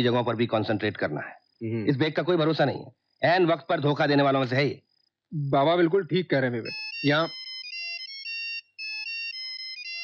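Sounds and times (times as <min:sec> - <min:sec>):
phone ringtone melody: 0:06.6 - 0:10.0.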